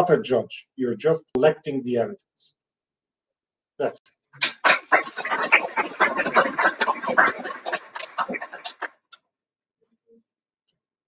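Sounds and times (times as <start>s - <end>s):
small audience applauding: 4.4s - 8.9s.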